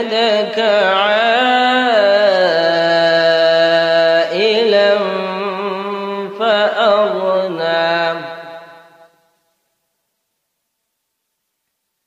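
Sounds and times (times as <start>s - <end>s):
man chanting melodically: 0.0s - 9.2s.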